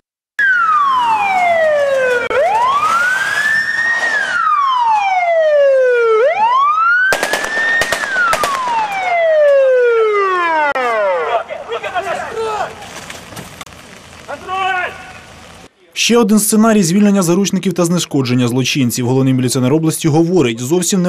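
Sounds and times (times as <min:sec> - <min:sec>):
police siren wailing: 0:00.4 - 0:13.0
sharp bangs: 0:07.1 - 0:09.6.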